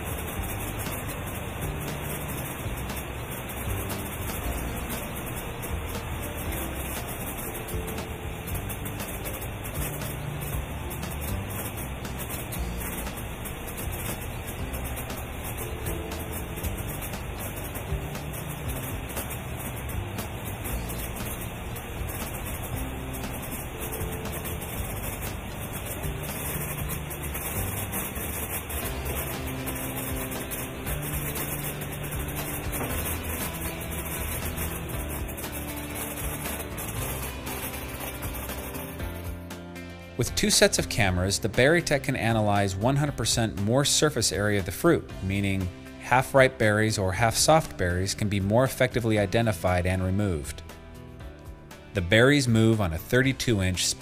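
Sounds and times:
background music with held notes: 0.0s - 54.0s
steady noise: 0.0s - 54.0s.

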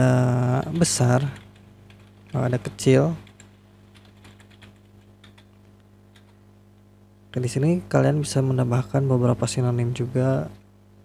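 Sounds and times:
steady low hum: 0.0s - 11.0s
keyboard keystrokes: 3.2s - 6.4s.

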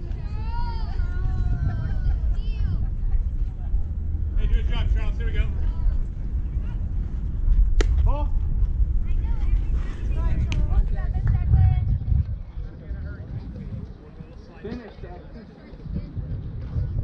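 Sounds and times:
wind rumbling on microphone: 0.0s - 17.0s
bat cracking baseball: 7.8s - 8.1s.

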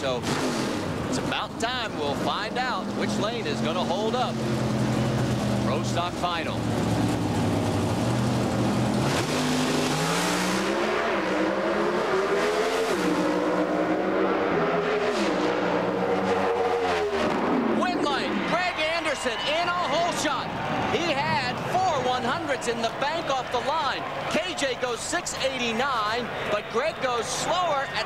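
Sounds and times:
drag car engines revving: 0.0s - 28.0s
voices shouting excitedly: 17.7s - 28.0s.

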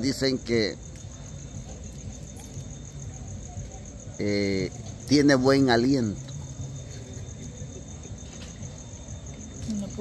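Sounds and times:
insect trilling: 0.0s - 10.0s
low background hum: 0.0s - 10.0s.

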